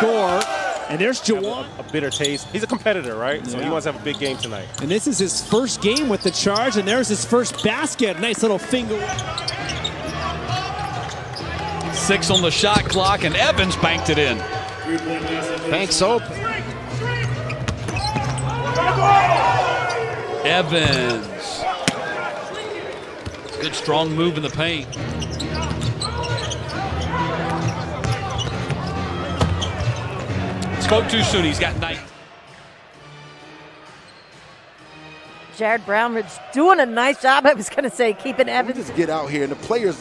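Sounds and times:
sneaker squeaks: 1.3s - 3.1s, 4.0s - 7.9s, 8.8s - 14.9s, 17.0s - 20.0s, 20.8s - 30.3s, 33.9s - 34.6s
players shouting: 5.2s - 32.8s.

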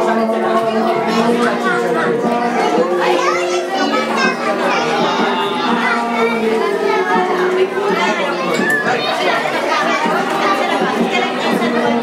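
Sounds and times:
background music: 0.0s - 12.0s
children chattering and calling out: 0.0s - 12.0s.

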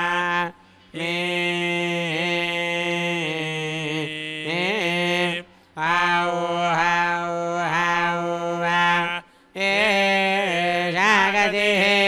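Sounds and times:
mantra chanting: 0.0s - 12.0s.

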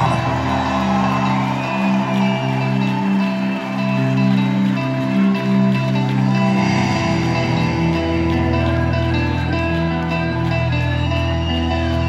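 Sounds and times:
electric guitars and bass chords: 0.0s - 12.0s.

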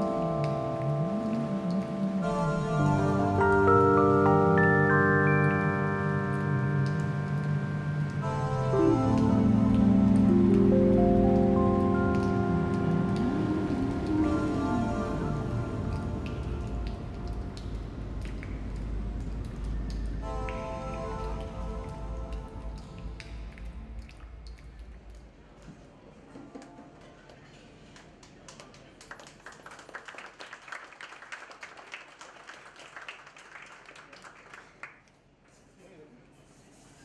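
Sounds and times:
synthesizer chords: 0.0s - 25.2s
deep bass: 6.5s - 25.6s.

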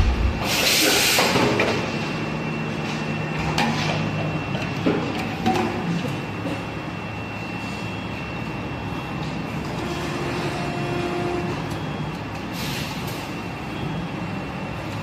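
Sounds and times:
hydraulic hiss: 0.0s - 1.5s
thin high whine: 0.0s - 3.5s
hydraulic machine hum: 0.0s - 7.8s, 8.4s - 11.8s.

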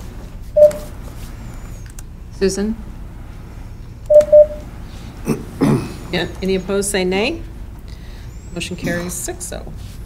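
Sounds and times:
telephone line beeps: 0.6s - 0.9s, 4.1s - 4.6s.

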